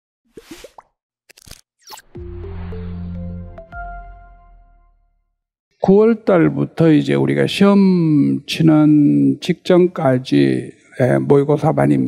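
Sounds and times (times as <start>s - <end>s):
rising swish: 1.9s - 3.9s.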